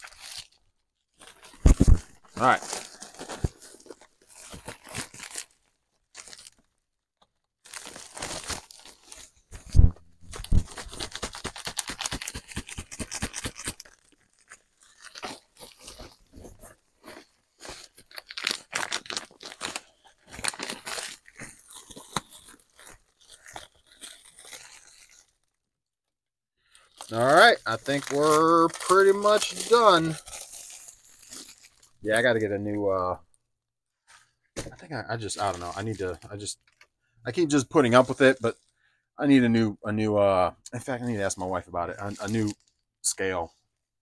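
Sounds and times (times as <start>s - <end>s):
plastic bag crinkling: 0.0s - 6.8s, 7.6s - 25.6s, 26.6s - 32.5s, 35.1s - 36.8s, 41.9s - 42.7s.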